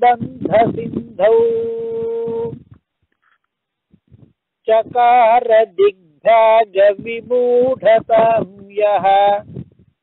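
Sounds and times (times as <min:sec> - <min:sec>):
man chanting: 0:00.0 - 0:02.6, 0:04.7 - 0:09.5.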